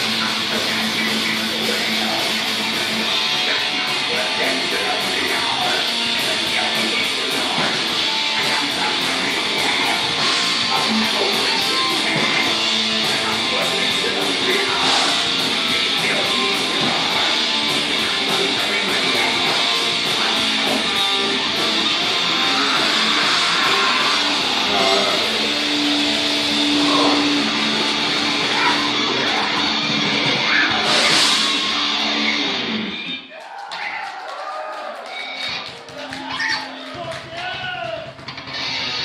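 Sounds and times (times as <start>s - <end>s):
live heavy metal band: 0.0s - 39.0s.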